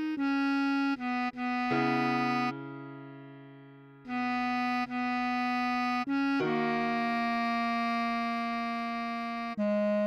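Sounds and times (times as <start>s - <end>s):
bass clarinet long note: 0.0s - 2.6s.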